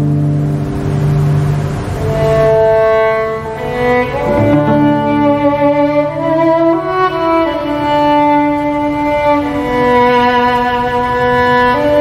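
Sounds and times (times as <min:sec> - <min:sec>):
string ensemble playing slowly: 0:00.0 - 0:12.0.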